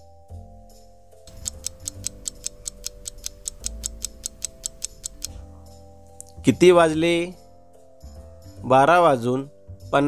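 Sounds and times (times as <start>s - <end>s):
soft background music: 0.0s - 10.0s
rapid clock ticking: 1.3s - 5.4s.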